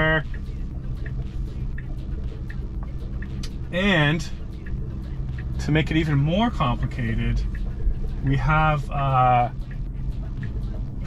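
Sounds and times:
faint light ticking: 0:00.0 - 0:11.0
low rumble inside car cabin: 0:00.0 - 0:11.0.

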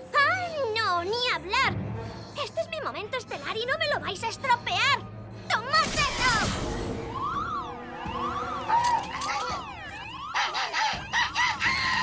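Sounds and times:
background music: 0:00.0 - 0:12.0
warbling siren-like warning tone: 0:03.0 - 0:12.0.

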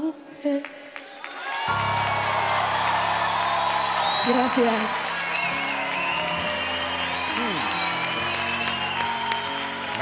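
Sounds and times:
audience applauding and cheering: 0:00.6 - 0:10.0.

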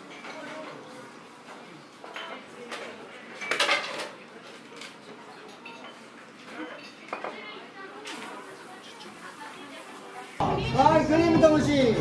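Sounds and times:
chopsticks clinking on ceramic dishes: 0:05.4 - 0:07.4.

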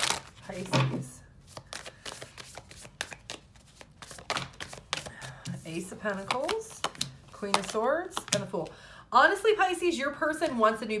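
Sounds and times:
cards being shuffled: 0:00.0 - 0:08.5.

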